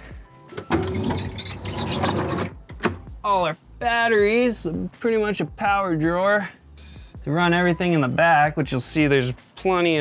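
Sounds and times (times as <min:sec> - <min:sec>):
metal door rattling and scraping: 0:00.6 - 0:03.0.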